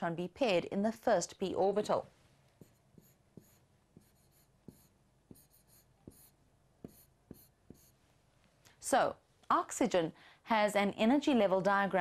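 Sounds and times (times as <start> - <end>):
pen tapping and scratching on board: 2.6 - 7.9.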